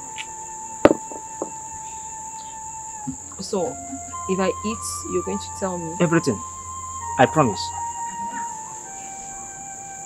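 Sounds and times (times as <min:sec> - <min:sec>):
insect chirring: 0:00.0 - 0:10.0
soft held music note: 0:00.9 - 0:09.8.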